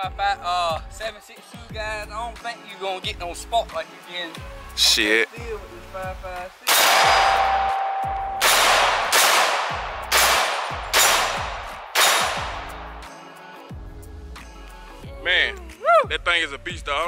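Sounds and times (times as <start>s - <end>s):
rifle shots with echo: 6.7s - 13.1s.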